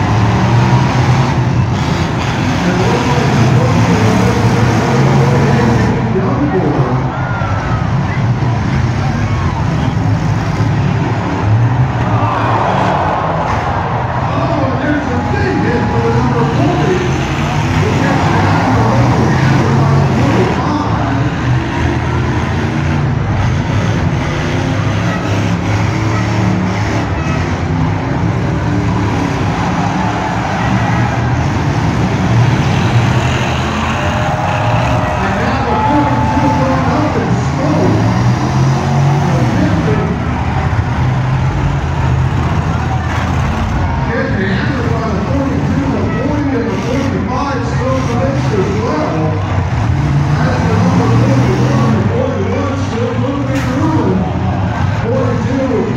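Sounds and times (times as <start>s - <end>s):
car engines revving: 0.0s - 55.9s
cars ramming: 0.0s - 55.9s
large crowd voices: 0.0s - 55.9s.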